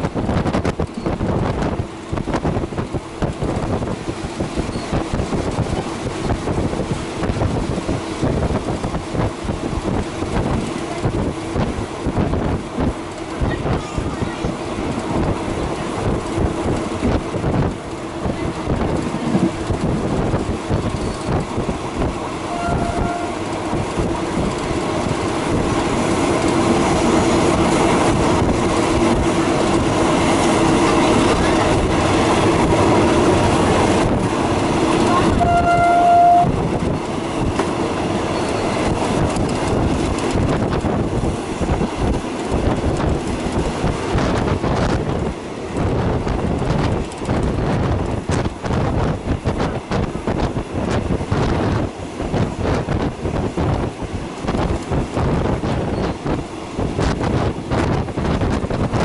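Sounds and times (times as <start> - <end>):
train rumble and wheel noise: 0.0 - 59.0
train horn blasts: 22.4 - 23.6, 35.0 - 36.7.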